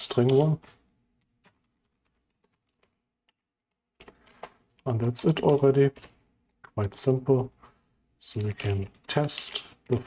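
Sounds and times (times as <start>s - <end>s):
faint keyboard keystrokes: 0.0s - 7.8s.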